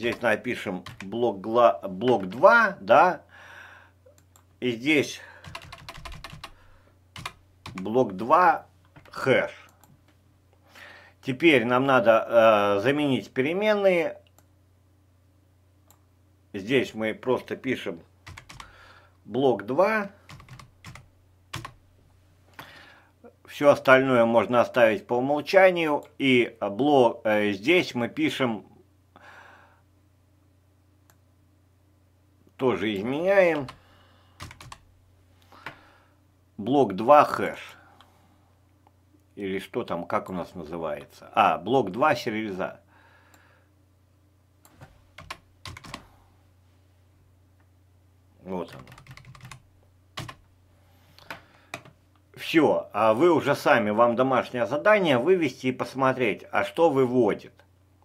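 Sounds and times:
computer keyboard keystrokes: 0.8 - 1.1, 5.4 - 6.6, 7.2 - 7.9, 18.3 - 18.7, 20.3 - 21.8, 34.4 - 34.8, 45.2 - 46.0, 48.7 - 49.6, 50.2 - 50.4, 51.2 - 52.0.

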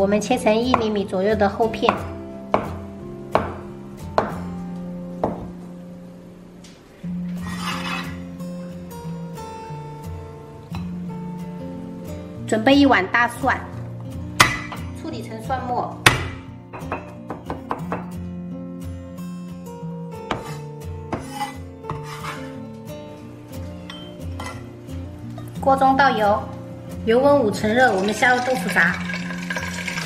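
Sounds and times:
soft background music: 0.0 - 30.0
cleaver knocking on cutting board: 3.4 - 3.6, 4.2 - 4.4, 16.1 - 18.1.

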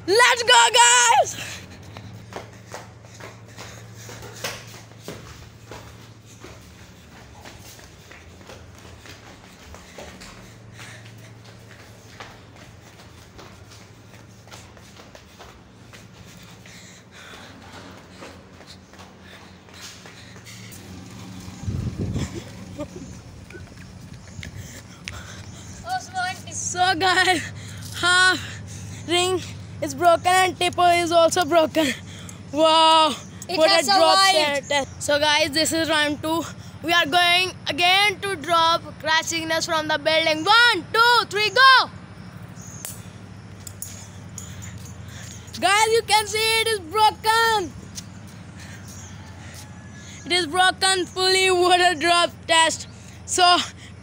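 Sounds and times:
steady low hum: 0.0 - 54.0
low rumble: 20.5 - 25.8.

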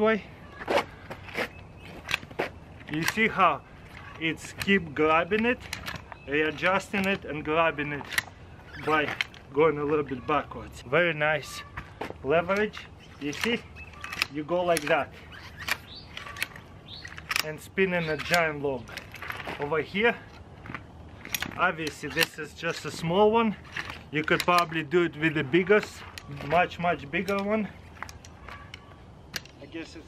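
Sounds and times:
log scraping on asphalt: 0.5 - 10.3
metal tool clicking: 12.5 - 19.0, 21.2 - 23.1, 23.7 - 29.6.

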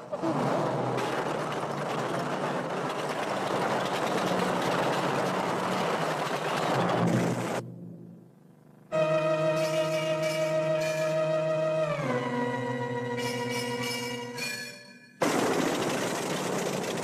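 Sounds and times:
vehicle mechanical clatter: 0.0 - 7.6, 15.2 - 17.0.

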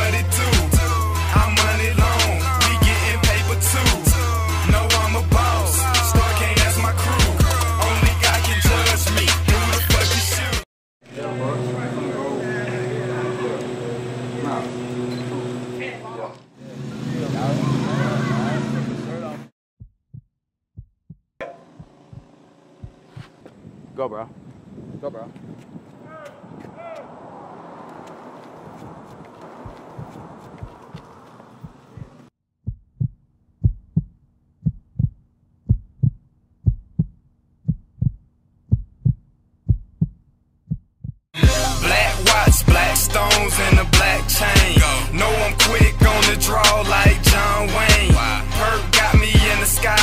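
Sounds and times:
low engine hum: 11.1 - 19.4, 26.7 - 32.3
men talking and calling out: 11.1 - 19.5, 26.0 - 28.1
heartbeat thumps: 19.8 - 23.7, 28.6 - 41.2.

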